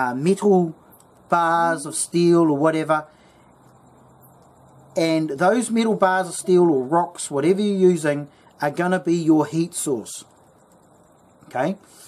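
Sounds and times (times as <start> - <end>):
gas burner hissing: 0.0 - 12.0.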